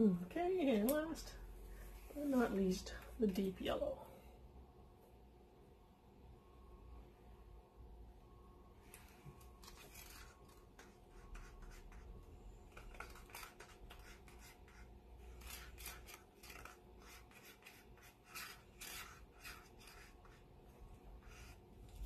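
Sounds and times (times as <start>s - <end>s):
stir stick scraping plastic cups: 8.9s - 22.0s.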